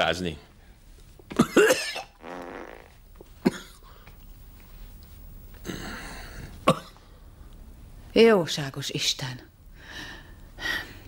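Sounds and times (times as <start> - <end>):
person coughing: 1.3 - 2.2, 3.4 - 3.8, 5.7 - 7.0
breathing: 9.7 - 11.0.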